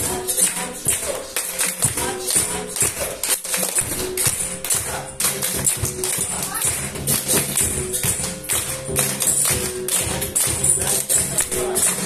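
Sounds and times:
hand drum: 0:01.8 - 0:12.0.

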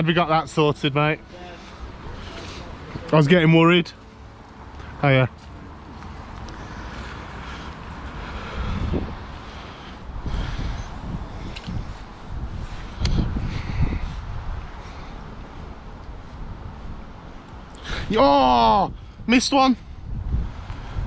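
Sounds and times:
wind buffeting microphone: 0:06.2 - 0:21.0.

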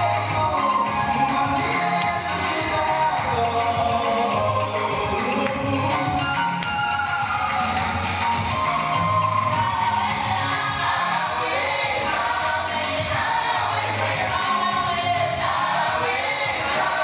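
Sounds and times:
gospel choir singing: 0:00.0 - 0:17.0
woman singing lead into microphone: 0:09.6 - 0:17.0.

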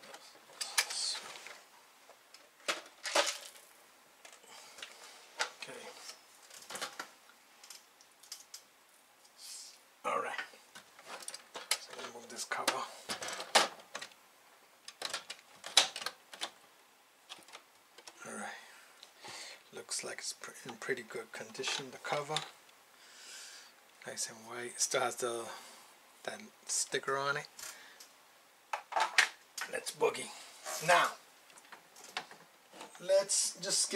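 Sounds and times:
plastic parts clicking and knocking: 0:02.3 - 0:03.6, 0:04.2 - 0:08.7, 0:10.7 - 0:14.2, 0:14.8 - 0:16.6, 0:17.3 - 0:18.2, 0:28.7 - 0:29.7.

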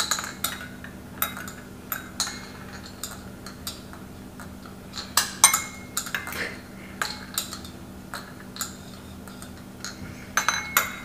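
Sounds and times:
chopsticks clinking against ceramic bowls: 0:00.0 - 0:11.0.

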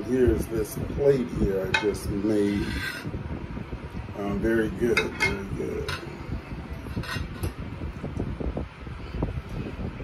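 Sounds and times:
steady low rumble: 0:00.0 - 0:10.0
fork scraping on plate: 0:02.5 - 0:03.1, 0:06.8 - 0:07.6.

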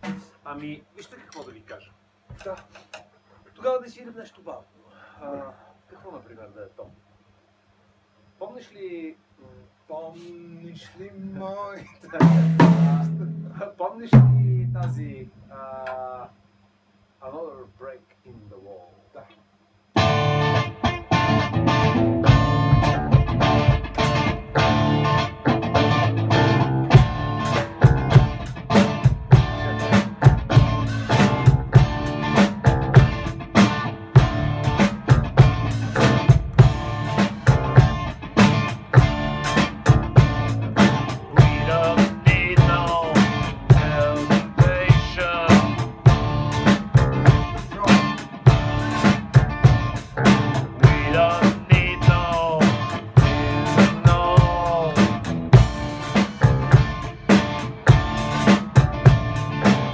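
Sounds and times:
drums with steady beat: 0:00.0 - 0:00.8, 0:11.8 - 0:16.0, 0:20.0 - 0:59.9
electric guitar: 0:20.0 - 0:59.9.

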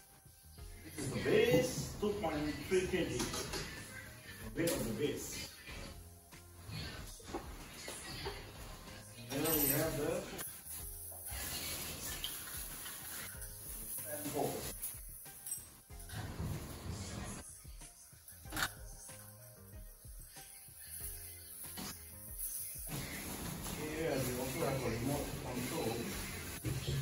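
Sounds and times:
faint music: 0:00.0 - 0:27.0
plastic wrapping rustling: 0:22.6 - 0:27.0.

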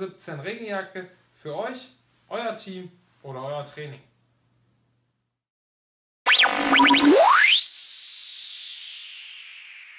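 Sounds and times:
electronic logo jingle: 0:06.3 - 0:09.9.

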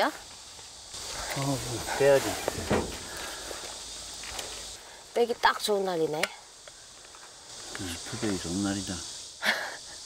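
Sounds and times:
insect chorus drone: 0:00.0 - 0:10.0.

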